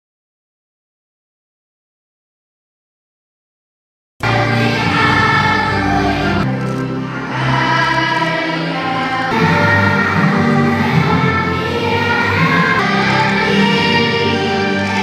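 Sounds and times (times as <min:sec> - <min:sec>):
children's choir singing: 0:04.2 - 0:15.0
instrumental backing: 0:04.2 - 0:15.0.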